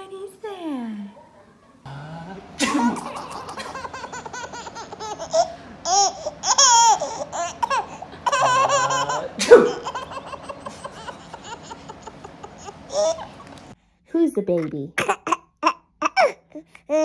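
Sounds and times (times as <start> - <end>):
baby laughing: 2.6 - 13.6, 15.1 - 17.0.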